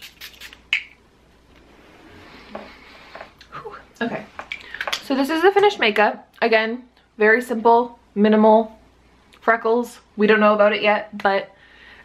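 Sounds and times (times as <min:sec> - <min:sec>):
spray bottle spritzing: 0:00.0 - 0:01.0.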